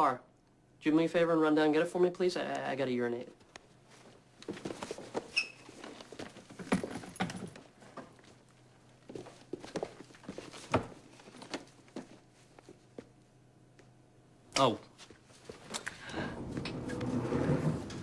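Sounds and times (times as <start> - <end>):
knocks and shuffles: 3.2 - 13.2
footsteps: 9.0 - 13.2.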